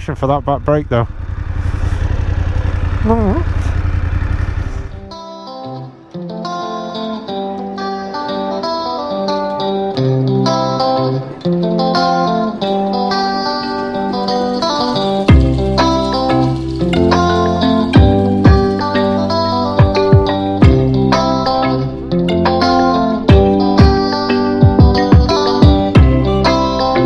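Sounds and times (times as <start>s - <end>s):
motorcycle engine running: 0.0s - 5.1s, 12.0s - 27.0s
plucked guitar music: 4.9s - 27.0s.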